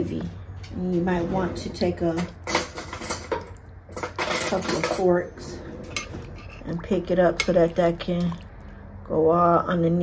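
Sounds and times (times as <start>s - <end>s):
metal forks clattering: 2.4s - 5.2s.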